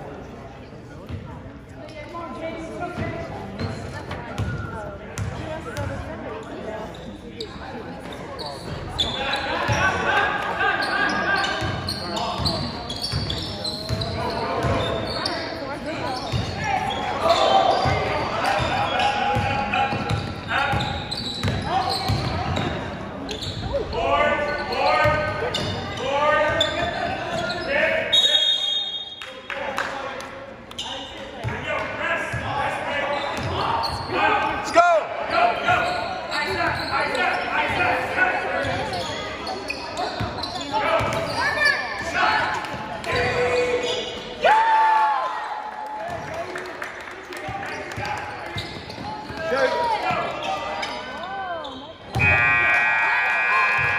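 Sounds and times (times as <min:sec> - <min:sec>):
referee's whistle: 0:28.0 - 0:29.2.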